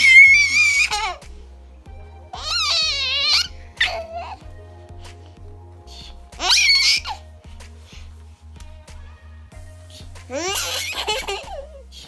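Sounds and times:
baby giggling and squealing: 0.0 - 1.3, 2.3 - 4.4, 5.9 - 7.3, 10.3 - 12.0.

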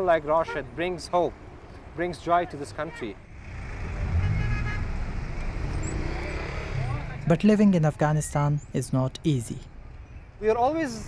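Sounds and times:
vehicle engines rumbling: 0.0 - 11.0.

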